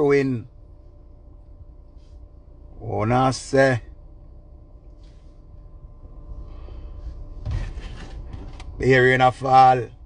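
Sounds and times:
steady low rumble: 0:00.0 - 0:10.0
man speaking: 0:02.8 - 0:03.9, 0:08.8 - 0:10.0.

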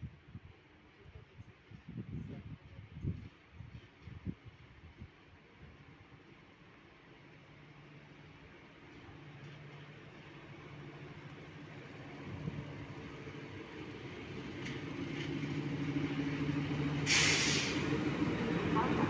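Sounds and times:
diesel locomotive engine running: 0:07.4 - 0:19.0
loud hiss of air: 0:16.9 - 0:18.1.

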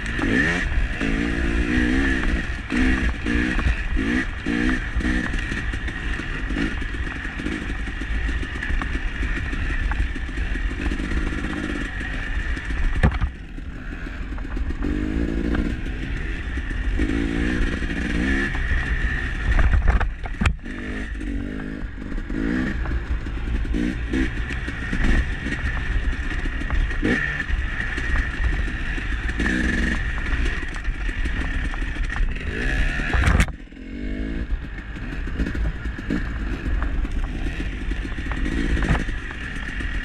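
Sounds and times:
dirt bike engine revving: 0:00.0 - 0:40.0.

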